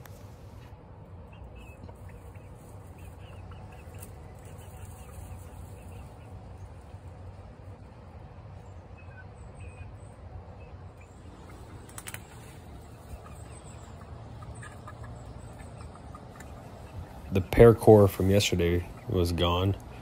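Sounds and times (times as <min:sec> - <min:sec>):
hens clucking softly: 0:00.1 - 0:20.0.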